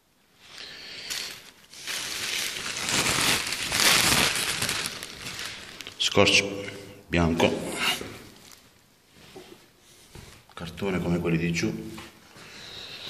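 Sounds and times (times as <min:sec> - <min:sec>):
plastic bag crinkling: 0:00.5 - 0:06.2.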